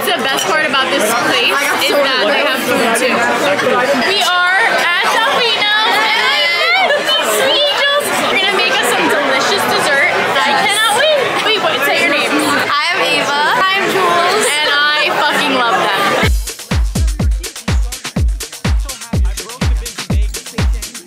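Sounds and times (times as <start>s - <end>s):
women talking and laughing: 0.0s - 16.3s.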